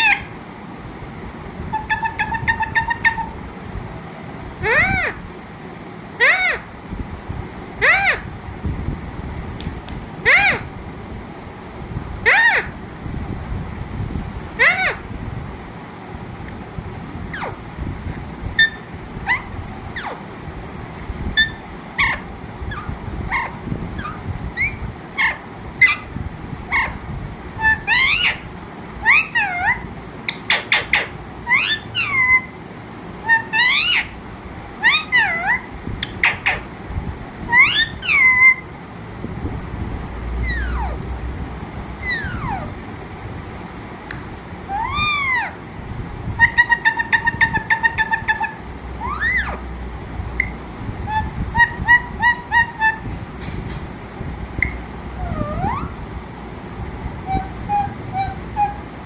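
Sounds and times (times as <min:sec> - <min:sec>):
parakeet chattering: 0:00.0 - 0:00.4, 0:01.7 - 0:03.4, 0:04.6 - 0:05.2, 0:06.2 - 0:06.7, 0:07.8 - 0:08.3, 0:10.2 - 0:10.7, 0:12.2 - 0:12.8, 0:14.6 - 0:15.1, 0:17.3 - 0:20.3, 0:21.3 - 0:32.6, 0:33.2 - 0:34.2, 0:34.8 - 0:36.7, 0:37.5 - 0:38.7, 0:40.4 - 0:41.1, 0:42.0 - 0:42.8, 0:44.1 - 0:45.6, 0:46.4 - 0:49.7, 0:50.4 - 0:53.2, 0:54.6 - 0:56.0, 0:57.2 - 0:58.9
parakeet squawking and whistling: 0:00.0 - 0:00.4, 0:01.6 - 0:03.4, 0:04.6 - 0:05.2, 0:06.2 - 0:06.7, 0:07.8 - 0:08.3, 0:10.2 - 0:10.7, 0:12.2 - 0:12.8, 0:14.6 - 0:15.1, 0:17.3 - 0:20.3, 0:21.3 - 0:32.6, 0:33.2 - 0:34.2, 0:34.8 - 0:36.7, 0:37.4 - 0:38.7, 0:40.4 - 0:41.1, 0:42.0 - 0:42.8, 0:44.1 - 0:45.6, 0:46.4 - 0:49.7, 0:50.4 - 0:53.3, 0:54.6 - 0:56.0, 0:57.2 - 0:59.0.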